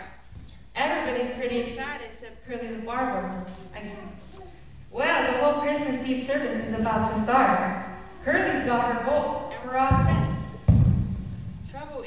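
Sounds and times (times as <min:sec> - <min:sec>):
dull low thuds: 0:08.3 - 0:11.8.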